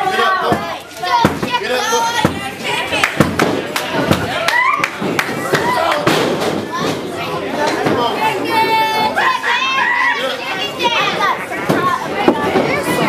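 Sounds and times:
crowd chattering and shouting: 0:00.0 - 0:13.0.

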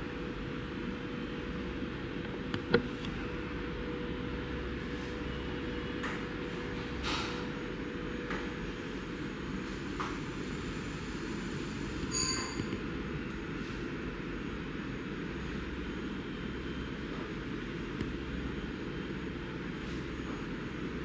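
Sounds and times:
low rumbling room noise: 0:00.0 - 0:21.0
high ringing ping: 0:12.1 - 0:12.8.

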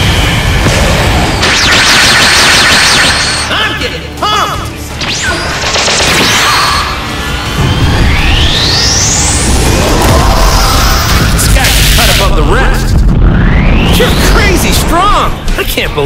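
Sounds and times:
background music: 0:00.0 - 0:16.0
rising whistling sweep: 0:07.1 - 0:11.4, 0:13.2 - 0:14.9.

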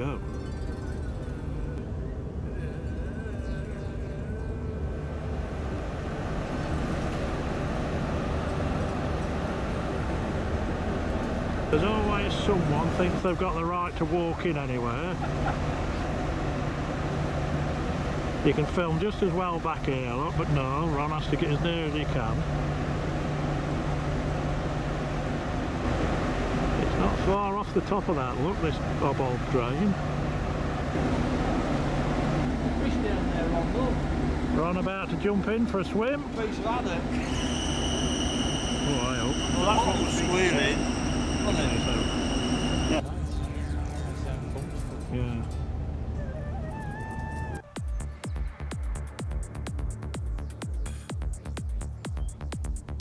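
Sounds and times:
diesel pumps droning: 0:00.0 - 0:53.0
rushing noise: 0:36.3 - 0:43.0.

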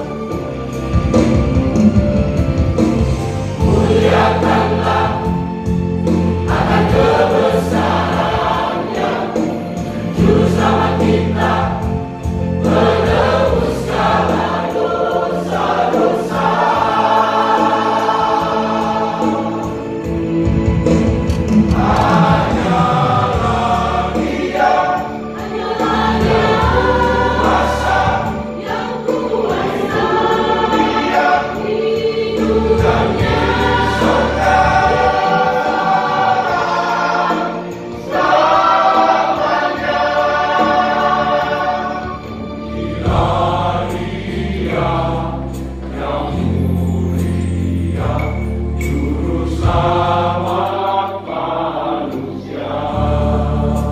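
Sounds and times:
choir singing in harmony: 0:00.0 - 0:53.9.

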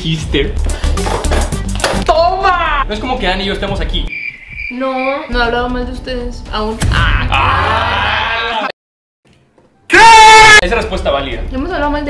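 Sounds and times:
man shouting in surprise: 0:02.1 - 0:02.9, 0:06.9 - 0:08.7, 0:09.9 - 0:10.6
high-pitched scream: 0:09.9 - 0:10.6.

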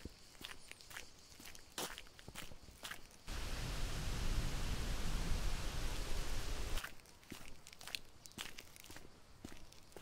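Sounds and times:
footsteps on sand: 0:00.0 - 0:04.4, 0:06.6 - 0:10.0
rushing noise with deep rumble: 0:03.3 - 0:06.8.

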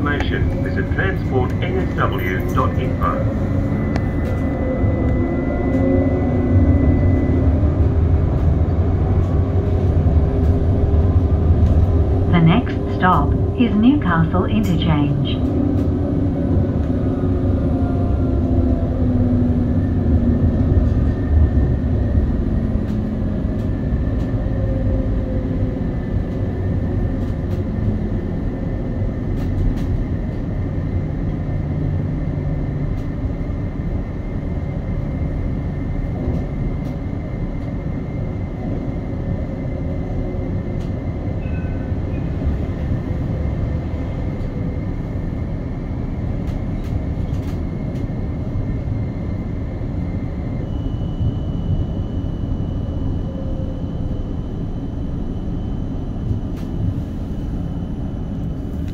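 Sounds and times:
tram rumbling: 0:00.0 - 0:58.9
faint high whine: 0:49.8 - 0:58.9.

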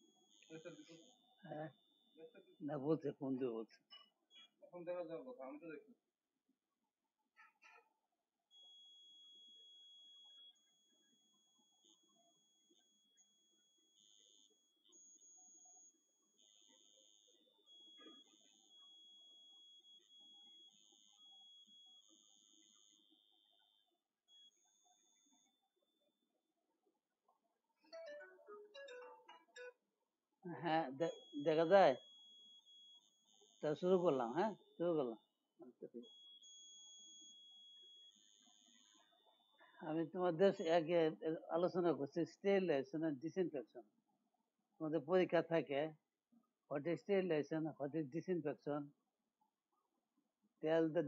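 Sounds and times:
faint high-pitched electronic tone: 0:00.0 - 0:05.8, 0:16.6 - 0:25.6, 0:30.5 - 0:36.3.

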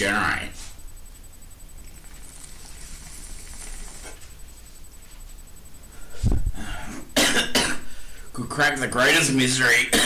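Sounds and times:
man coughing: 0:06.8 - 0:07.9.

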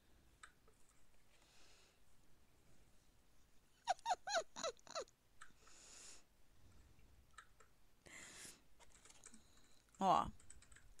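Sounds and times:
animal yelping: 0:03.9 - 0:05.0.

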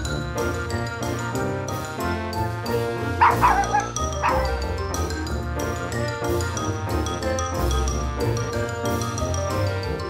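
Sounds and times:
background music: 0:00.0 - 0:10.0
small dog yipping: 0:03.2 - 0:04.6.

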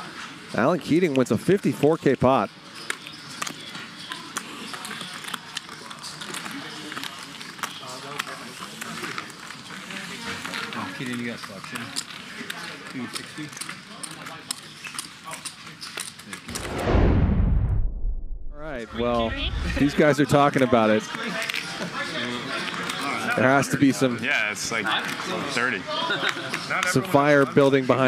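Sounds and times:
low table talk: 0:00.0 - 0:16.5, 0:18.6 - 0:28.0
deep booming whoosh: 0:16.5 - 0:20.0.

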